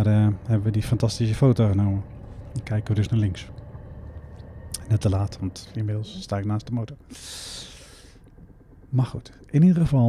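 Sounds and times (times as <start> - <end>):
person breathing close to microphone: 7.0 - 8.2.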